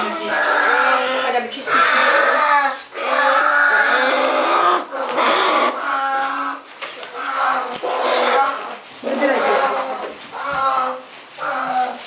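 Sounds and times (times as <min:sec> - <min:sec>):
bear cub wailing: 0:00.1 - 0:12.0.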